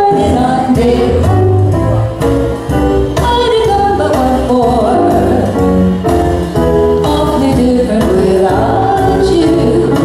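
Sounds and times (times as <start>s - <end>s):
steady bass line: 0.0s - 10.0s
person singing: 7.1s - 10.0s.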